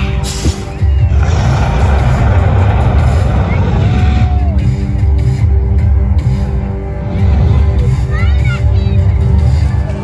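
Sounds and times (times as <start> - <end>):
low rumbling soundtrack: 0.0 - 10.0.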